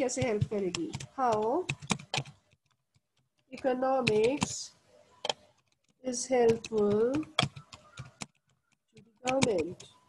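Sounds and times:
keyboard key clicks: 5.2s - 10.0s.

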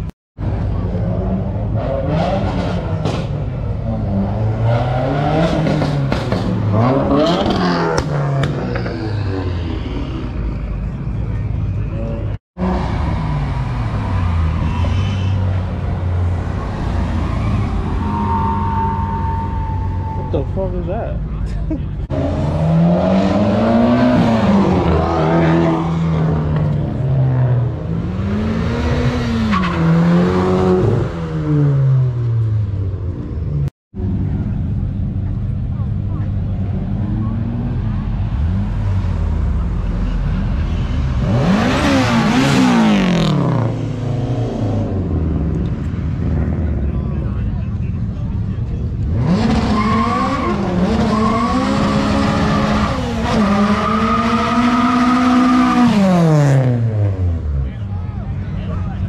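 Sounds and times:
cars revving past: 0.5s - 10.8s, 22.0s - 35.1s, 36.4s - 57.8s.

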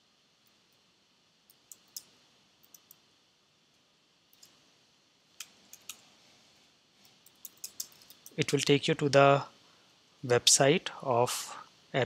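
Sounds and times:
computer keyboard typing: 7.2s - 8.3s.

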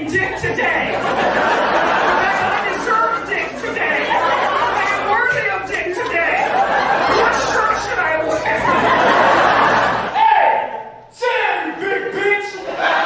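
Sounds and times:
man talking into a microphone: 0.0s - 1.1s, 2.0s - 8.9s, 10.1s - 12.8s.

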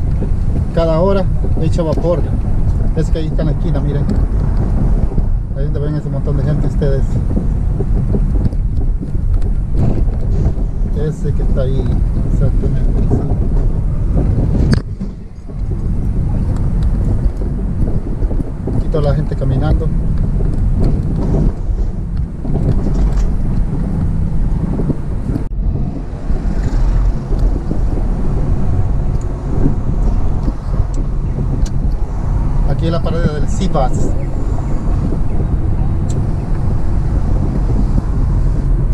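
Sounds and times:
car engine and road noise: 0.0s - 38.9s.

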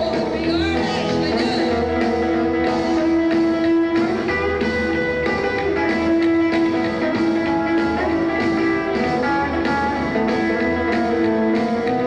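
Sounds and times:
electric guitar lead: 0.0s - 12.0s
rockabilly band playing: 0.0s - 12.0s.

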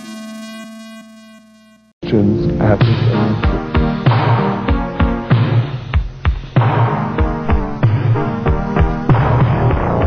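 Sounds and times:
buzzy synthesizer tone: 0.0s - 3.7s.

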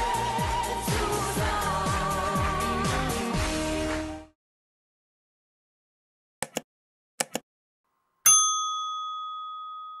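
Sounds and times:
notification bell chime: 8.3s - 10.0s.

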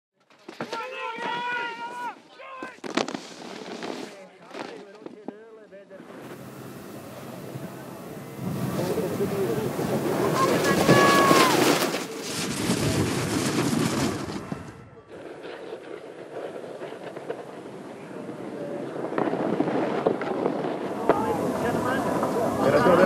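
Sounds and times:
people shouting: 0.7s - 2.8s, 10.1s - 11.9s
snowboards scraping over snow: 2.8s - 23.0s
wind on microphone: 6.4s - 23.0s.

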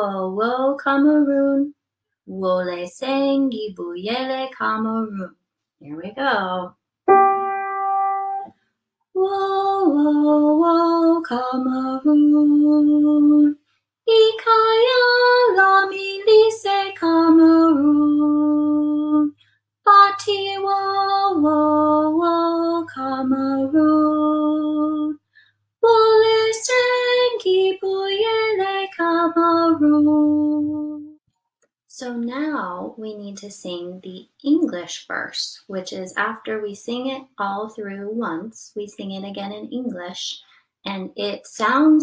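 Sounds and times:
woman speaking: 2.3s - 6.7s, 31.9s - 42.0s.

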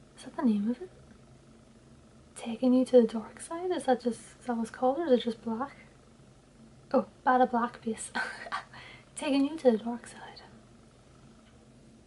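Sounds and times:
low steady hum: 0.0s - 12.0s
woman speaking: 0.2s - 1.0s, 2.4s - 5.9s, 6.9s - 10.6s.

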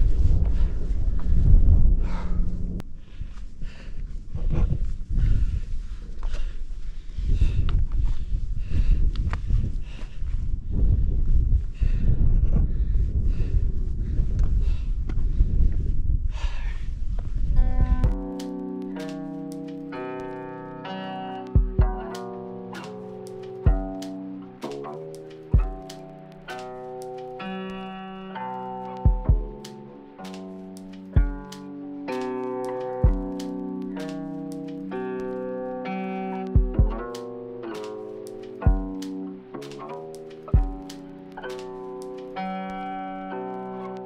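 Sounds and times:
low beat: 17.7s - 20.5s, 21.4s - 42.4s
plucked notes: 17.7s - 44.0s.

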